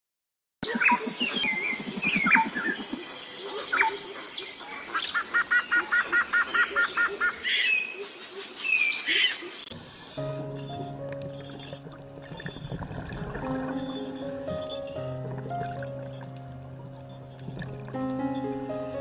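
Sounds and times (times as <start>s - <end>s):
songbirds chirping: 0.6s - 19.0s.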